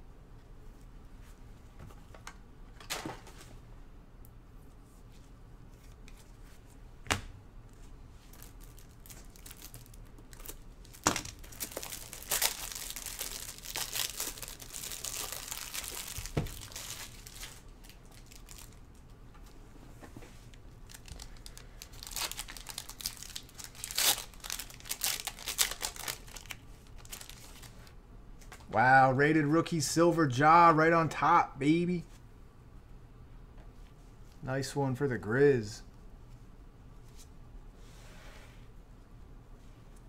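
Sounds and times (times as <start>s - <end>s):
cards being handled: 5.1s - 17.6s
foil wrapper crinkling and tearing: 8.3s - 19.0s, 20.8s - 27.8s.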